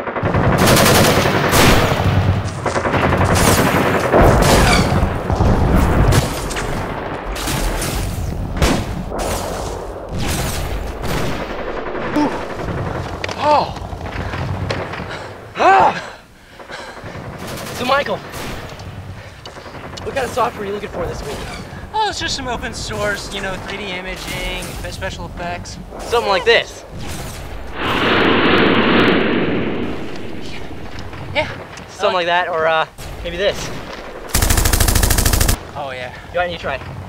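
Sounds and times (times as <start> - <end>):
rapid gunfire bursts: 0.0 - 4.4, 34.0 - 35.6
automatic gunfire: 34.2 - 35.6.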